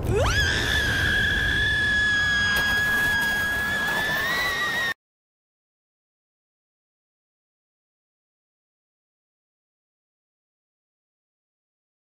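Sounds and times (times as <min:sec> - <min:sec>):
woman screaming high-pitched: 0:00.1 - 0:05.0.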